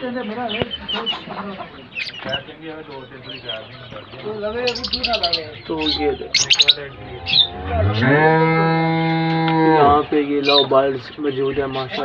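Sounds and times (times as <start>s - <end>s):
lovebirds chattering: 0.0s - 12.0s.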